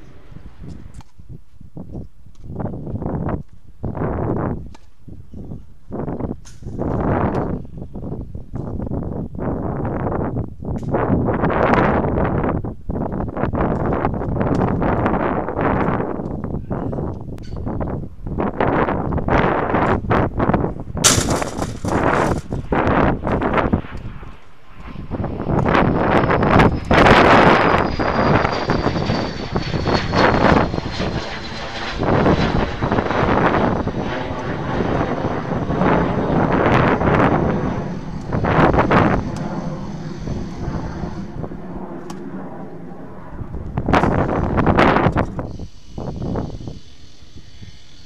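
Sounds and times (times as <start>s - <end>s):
wind buffeting microphone: 0.0s - 47.9s
aircraft engine passing overhead: 0.0s - 48.0s.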